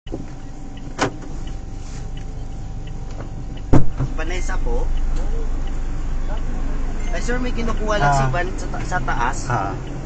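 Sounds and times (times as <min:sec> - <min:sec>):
car cabin hum: 0:00.1 - 0:10.0
sharp knock: 0:03.7 - 0:04.1
deep thump: 0:03.7 - 0:04.2.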